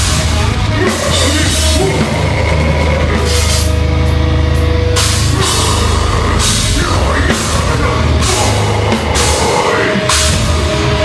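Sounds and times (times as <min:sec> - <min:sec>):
heavy distorted guitars: 0:00.0 - 0:11.0.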